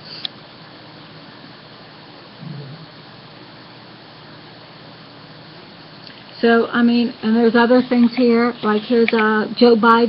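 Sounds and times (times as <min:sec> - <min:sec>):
low hiss: 0:00.0 - 0:10.0
brief low hum: 0:02.4 - 0:03.0.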